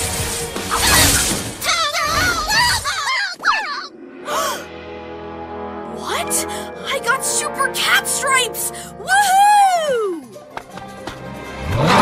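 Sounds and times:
background music: 0.0 - 2.8, 3.9 - 12.0
cartoon crashing shattering impact: 0.0 - 2.9.

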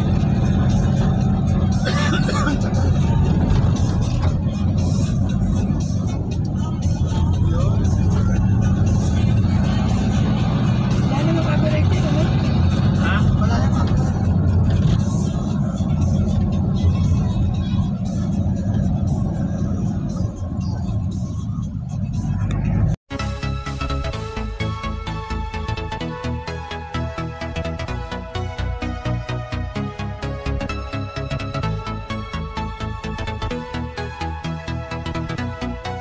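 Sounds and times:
car engine and road noise: 0.0 - 36.0.

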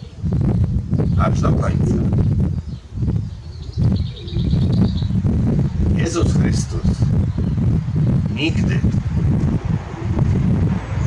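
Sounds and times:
steady low rumble: 0.0 - 11.0
songbird chirping high notes: 2.2 - 5.3.

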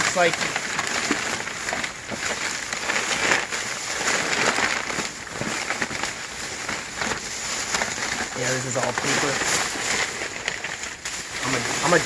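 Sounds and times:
paper shuffling: 0.0 - 12.0
plastic bags rustling: 0.0 - 12.0.

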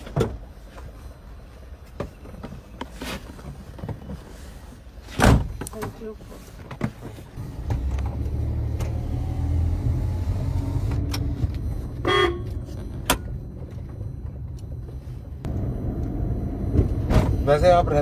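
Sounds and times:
car engine and road rumble: 0.0 - 18.0
car horn toot: 12.0 - 12.7.

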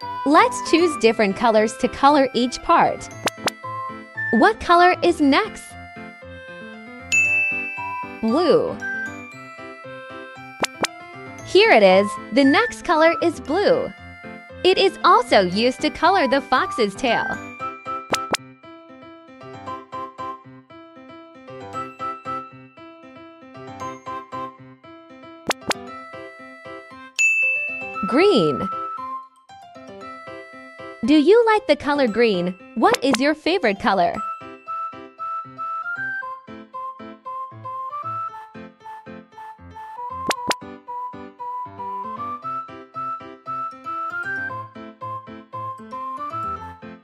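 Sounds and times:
soft background music: 0.0 - 47.0
bright chime: 7.1 - 9.3, 27.2 - 28.9.

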